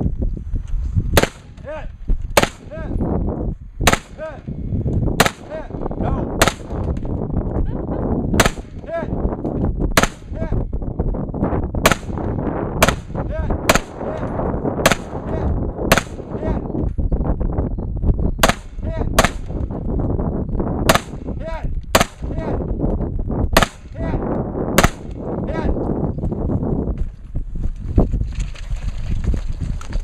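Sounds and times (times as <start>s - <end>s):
gunshots with echo: 1.2s - 1.6s, 2.4s - 2.9s, 3.8s - 4.4s, 5.2s - 5.7s, 6.4s - 6.8s, 8.4s - 9.0s, 10.0s - 10.5s, 11.8s - 16.5s, 18.4s - 19.6s, 20.9s - 22.4s, 23.6s - 24.0s, 24.8s - 25.3s.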